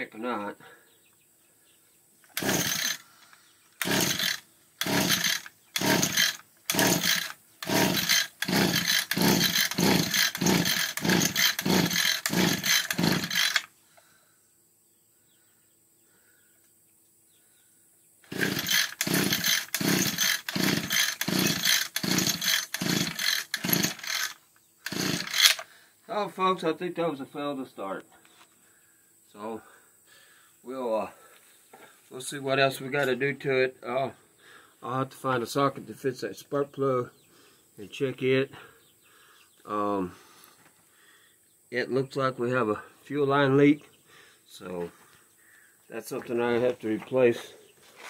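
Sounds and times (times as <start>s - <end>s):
string trimmer pull-start cranking: 2.3s - 3.1s, 3.8s - 13.7s, 18.2s - 25.7s.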